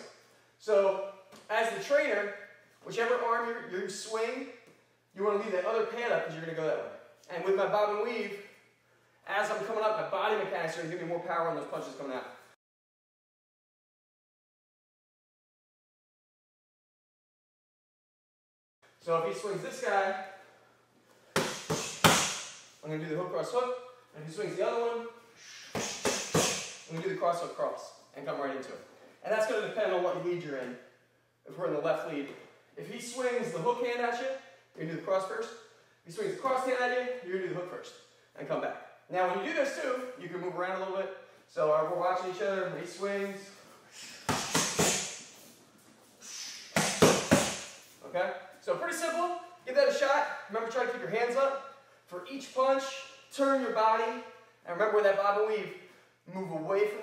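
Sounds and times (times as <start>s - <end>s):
punches smacking focus mitts: 21.4s - 22.5s, 44.3s - 45.2s, 46.8s - 47.7s.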